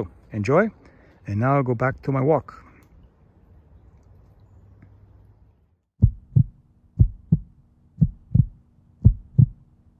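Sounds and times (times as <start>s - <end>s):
heartbeat thumps: 6.0s - 9.7s.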